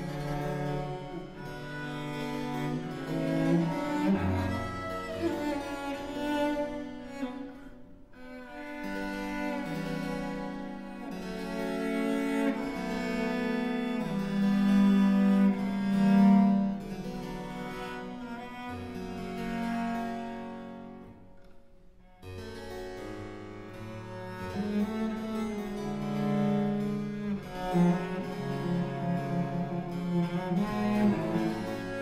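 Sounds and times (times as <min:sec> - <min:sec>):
cello sustained notes: 0:00.0 - 0:21.3, 0:22.0 - 0:32.0.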